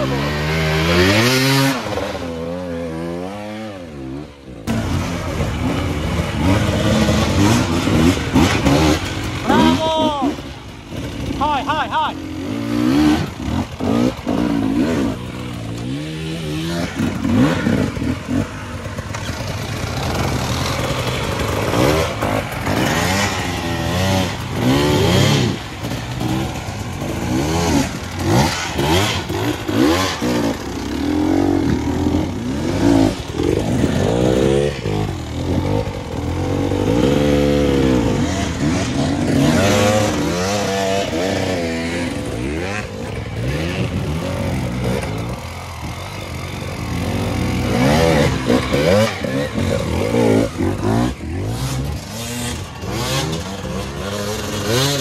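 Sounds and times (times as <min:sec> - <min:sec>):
dirt bike engines revving: 0:00.0 - 0:55.0.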